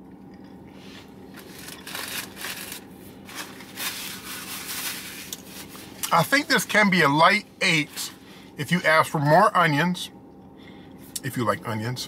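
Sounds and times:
faint low hum: 0.0 - 12.0
paper wrapper rustling: 1.4 - 5.9.

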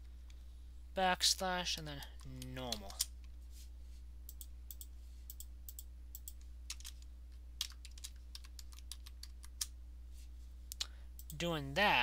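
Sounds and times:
low electrical hum: 0.0 - 12.0
typing on computer keyboard: 7.6 - 9.7.

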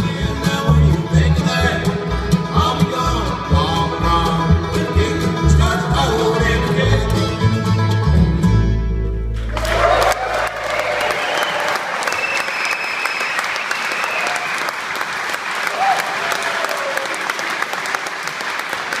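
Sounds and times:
audience applauding and cheering: 9.4 - 19.0.

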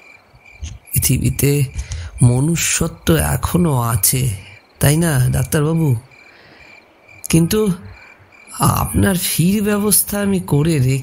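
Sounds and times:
crickets chirping: 0.0 - 11.0
man speaking: 0.6 - 6.1, 7.2 - 11.0.

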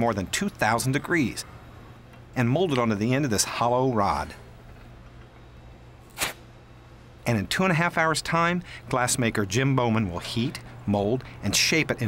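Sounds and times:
steady low hum: 0.0 - 12.0
short sharp hiss: 6.1 - 6.5.

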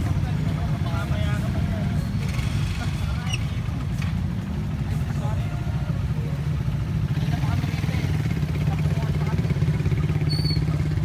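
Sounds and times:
motorcycle engines idling: 0.0 - 11.0
people's voices chattering: 0.0 - 11.0.

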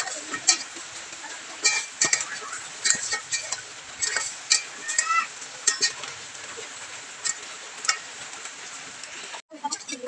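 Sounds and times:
metal spatula scraping a pan: 0.0 - 8.2
frying sizzle: 0.0 - 10.0.

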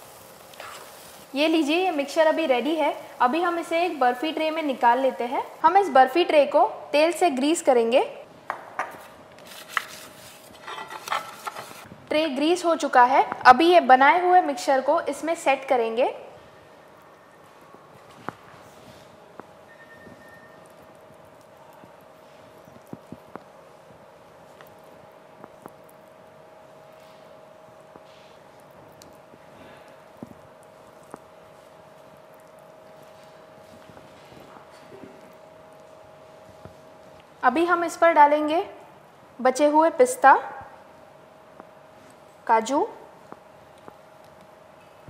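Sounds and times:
faint steady hum: 0.0 - 45.0
spoon scraping sticky mixture: 20.6 - 23.3, 28.0 - 35.4.

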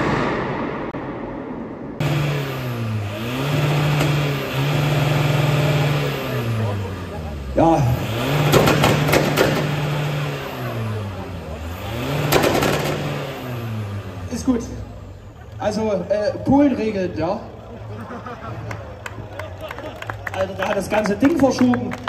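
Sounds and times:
car engine revving: 1.9 - 21.6
sharp cracks: 8.4 - 9.8.

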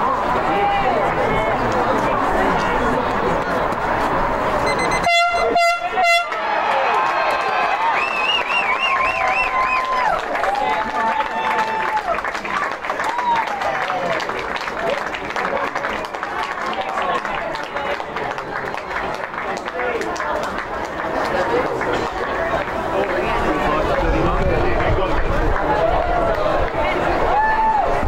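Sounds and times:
spectators shouting and cheering: 0.0 - 17.6, 21.0 - 28.0
siren blasts: 4.7 - 6.2.

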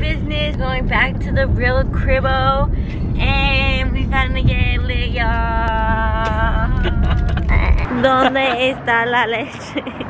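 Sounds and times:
car rumble: 0.0 - 10.0.

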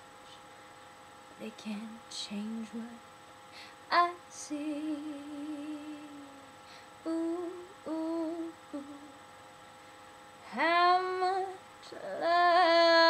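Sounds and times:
faint electrical hum: 0.0 - 13.0
woman humming and singing: 3.9 - 9.2.

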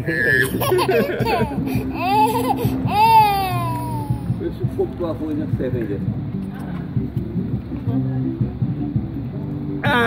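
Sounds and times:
toddler squealing: 1.6 - 4.4.

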